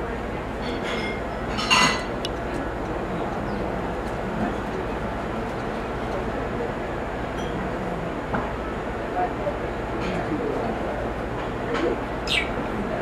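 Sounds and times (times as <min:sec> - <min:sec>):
background murmur: 0:00.0 - 0:13.0.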